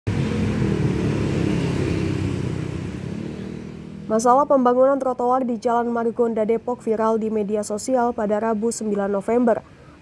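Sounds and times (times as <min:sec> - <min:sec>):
motorcycles and cars passing: 0:00.1 - 0:10.0.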